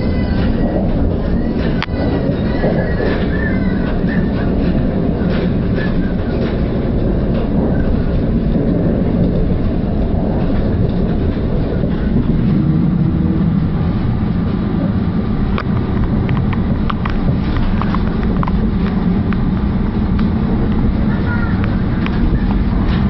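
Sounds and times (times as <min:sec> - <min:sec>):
train wheels rumbling on rail: 0:00.0 - 0:23.0.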